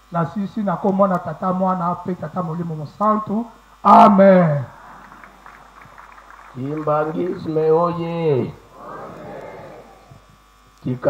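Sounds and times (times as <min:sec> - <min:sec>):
faint electrical buzz: 0:00.0 - 0:11.0
murmur: 0:03.8 - 0:11.0
amplified voice: 0:06.6 - 0:10.2.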